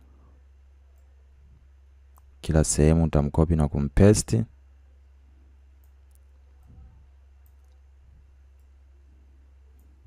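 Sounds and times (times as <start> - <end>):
steady low hum: 0.0 - 10.0
faint computer clicks: 5.8 - 6.7, 7.4 - 7.9.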